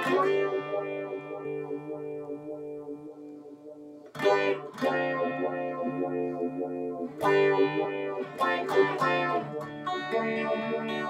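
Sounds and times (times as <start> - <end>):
electric guitar with tremolo: 0.0 - 11.0.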